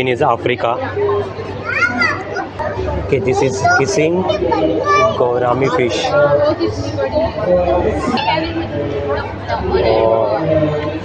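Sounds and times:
child's high-pitched voice: 1.6 - 2.9, 3.5 - 5.2.

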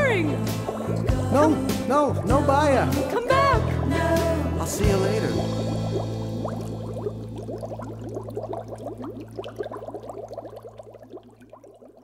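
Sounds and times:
water bubbling and gurgling: 0.0 - 12.0.

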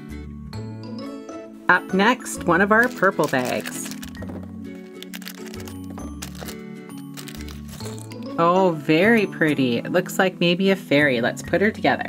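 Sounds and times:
soft background music with bass: 0.0 - 12.0
plastic parts clicking on table: 2.8 - 8.1
foil bag crinkling and tearing: 2.8 - 8.2.

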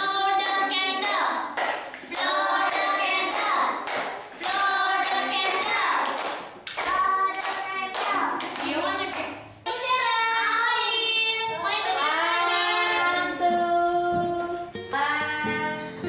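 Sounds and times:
children singing together: 0.0 - 16.0.

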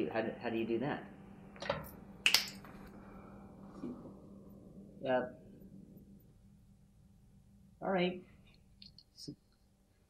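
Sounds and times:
fingers snapping: 2.2 - 2.6.

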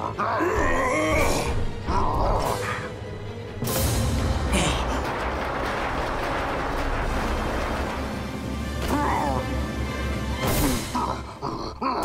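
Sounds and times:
monster growling and grunting: 0.0 - 3.0, 10.6 - 12.0
background music: 0.0 - 12.0.

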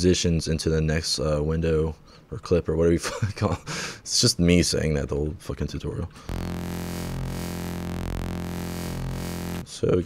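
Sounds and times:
low sustained synth note: 6.3 - 9.6.

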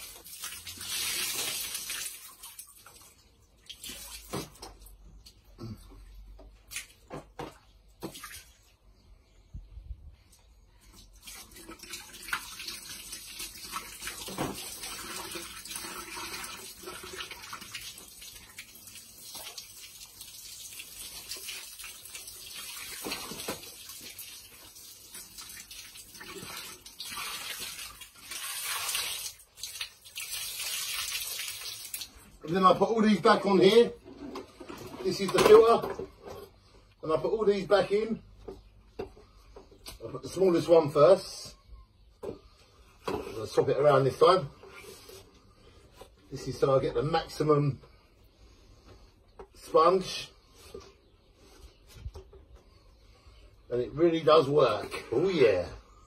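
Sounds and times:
hose water splashing through sponge: 0.0 - 5.4, 10.8 - 33.9.

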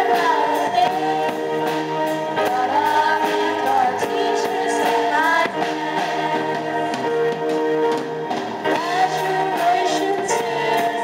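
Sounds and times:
children's choir singing: 0.0 - 7.6, 8.7 - 11.0
drum kit beat: 0.0 - 11.0.

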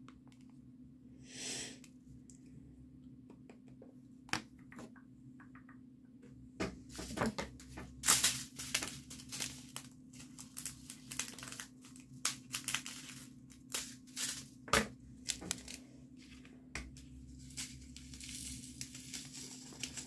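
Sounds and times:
plastic crinkling and rustling: 6.9 - 15.8, 16.9 - 20.0.

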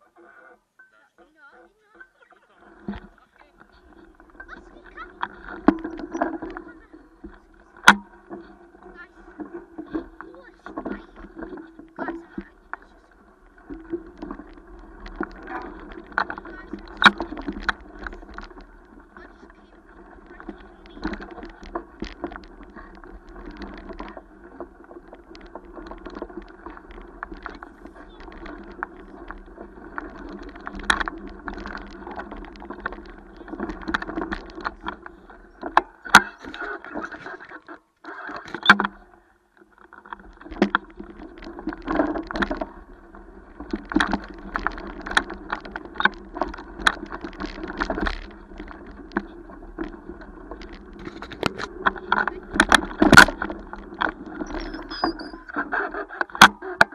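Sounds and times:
bike rattling and knocking: 3.9 - 36.4, 39.8 - 55.5.

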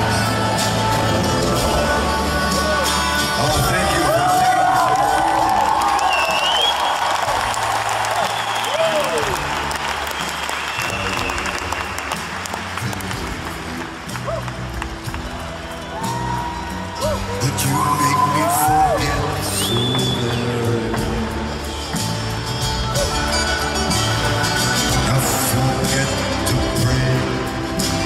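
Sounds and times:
live band playing: 0.0 - 28.0
audience clapping along: 3.4 - 27.6.

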